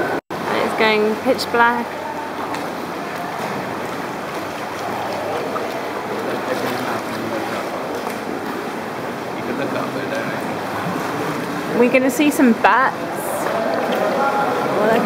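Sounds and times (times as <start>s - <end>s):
murmur of voices: 0.0s - 15.0s
water washing around canoes: 0.0s - 15.0s.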